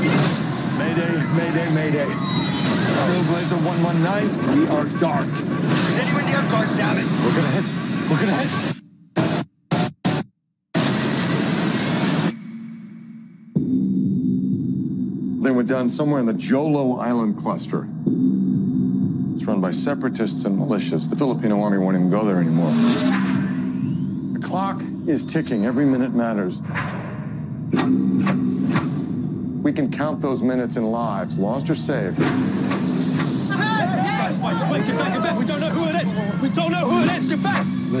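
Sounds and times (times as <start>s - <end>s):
low hum: 11.0s - 38.0s
steady low drone: 11.5s - 38.0s
low rumble: 12.3s - 33.4s.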